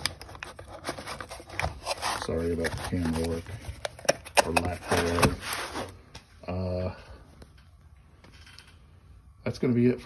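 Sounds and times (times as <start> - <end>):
cardboard box being handled: 0.0 - 6.0.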